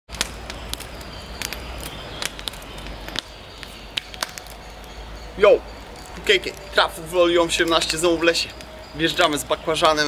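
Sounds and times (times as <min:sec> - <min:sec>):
campfire crackling and popping: 0:00.1 - 0:10.0.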